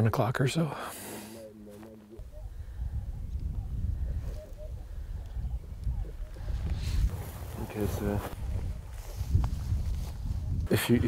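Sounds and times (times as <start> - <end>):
wind rumbling on microphone: 2.2 - 11.0.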